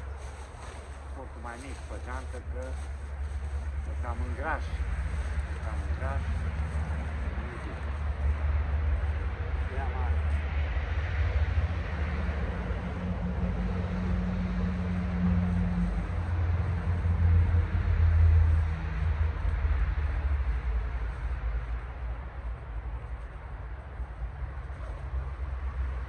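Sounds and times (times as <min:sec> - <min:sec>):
heavy vehicle engine: 0:00.0 - 0:26.0
road traffic rumble: 0:00.0 - 0:26.0.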